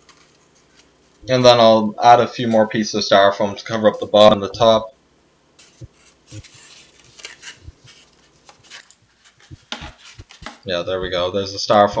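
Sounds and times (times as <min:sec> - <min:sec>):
styrofoam rustling and scraping: 0:05.6 - 0:10.7.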